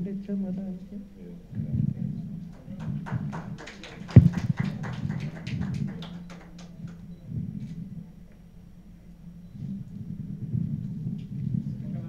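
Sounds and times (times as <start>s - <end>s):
low steady hum: 0.0s - 12.0s
audience clapping: 2.5s - 7.1s
loud low thump: 4.2s - 4.6s.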